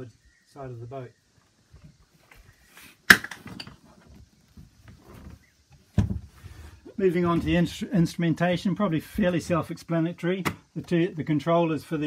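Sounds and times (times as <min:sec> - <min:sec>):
faint rustling: 0:01.3 - 0:07.9.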